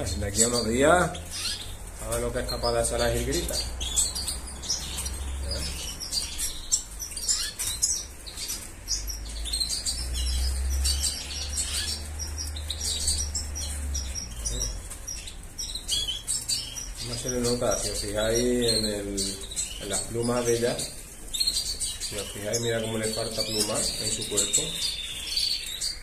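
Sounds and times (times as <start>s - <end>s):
finches chirping: 0.0s - 26.0s.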